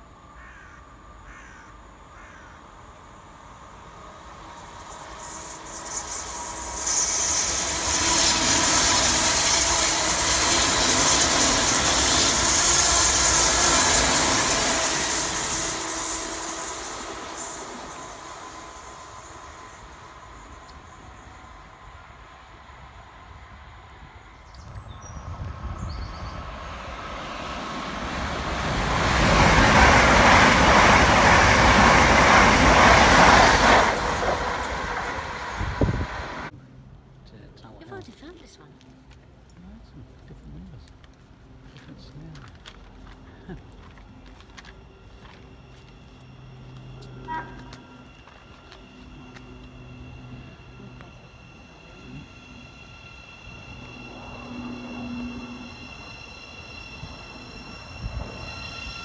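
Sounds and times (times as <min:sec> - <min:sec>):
electric train passing: 0:00.0 - 0:59.0
second electric train approaching: 0:00.0 - 0:59.0.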